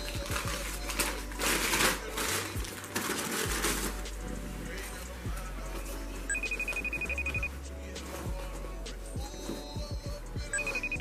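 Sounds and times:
background music: 0.0s - 11.0s
phone ringing with rapid beeps: 6.3s - 7.6s, 10.5s - 11.0s.

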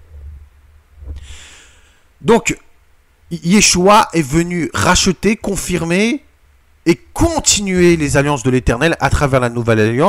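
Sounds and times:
low hum: 0.0s - 3.5s, 4.3s - 9.4s
man drawing a breath: 1.2s - 2.1s.

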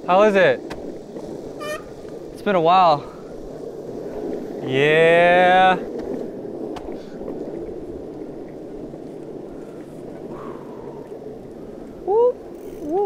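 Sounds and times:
bicycle tyres rolling on pavement: 0.0s - 13.0s
rushing air: 0.8s - 12.3s.

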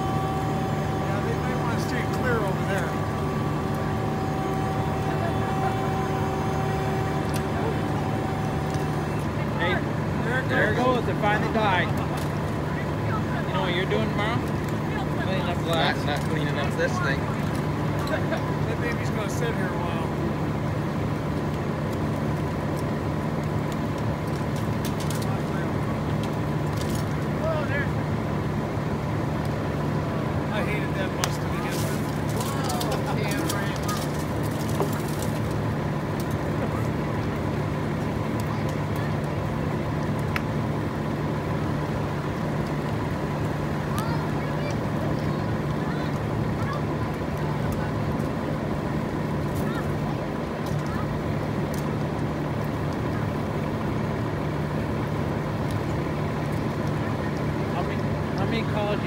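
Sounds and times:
fire burning: 0.0s - 59.0s
steady low drone: 0.0s - 59.0s
sharp pops and cracks from fire: 0.1s - 59.0s.

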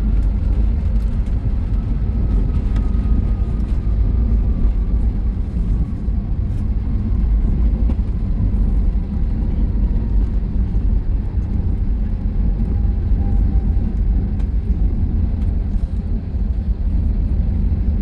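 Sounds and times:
airliner engines rumbling in cabin: 0.0s - 18.0s.

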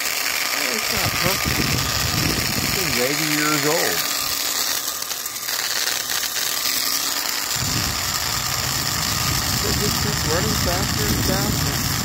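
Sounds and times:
electric drill running: 0.0s - 12.0s.

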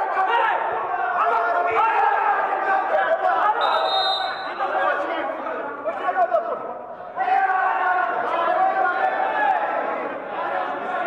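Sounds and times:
referee's whistle blast: 3.6s - 4.6s.

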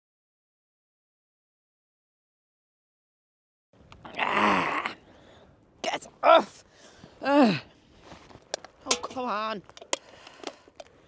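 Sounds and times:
person groaning: 4.0s - 5.0s.

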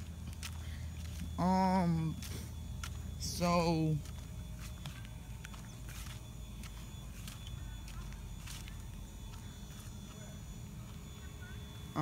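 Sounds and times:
footsteps on asphalt: 0.0s - 11.1s
steady low rumble: 0.0s - 12.0s.

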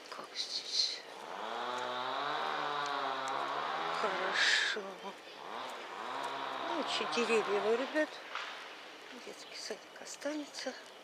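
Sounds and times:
vehicle engine running: 1.2s - 4.6s, 5.4s - 8.2s.

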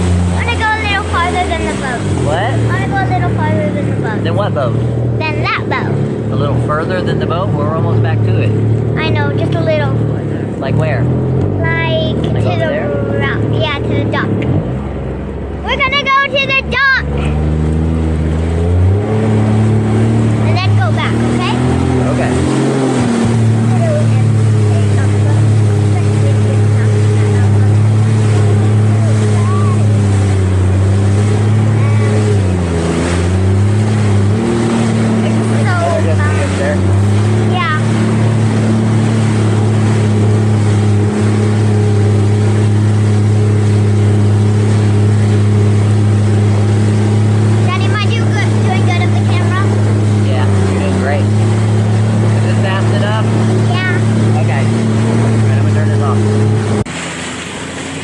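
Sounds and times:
jet ski engine running: 0.0s - 58.0s
spray and wind rushing: 0.0s - 58.0s.

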